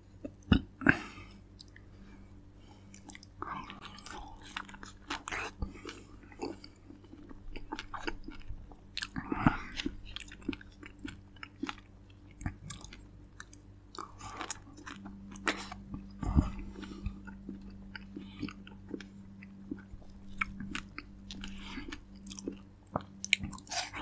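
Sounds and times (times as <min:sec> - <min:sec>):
person chewing and biting fruit: 0:02.9 - 0:24.0.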